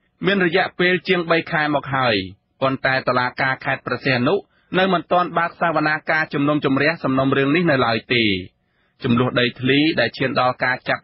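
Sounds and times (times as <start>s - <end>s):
person reading narration: 0.2s - 11.0s.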